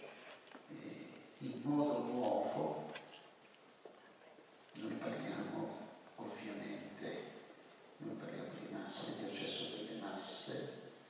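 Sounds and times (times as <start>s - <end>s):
man speaking: 0.7s - 3.0s, 4.8s - 11.0s.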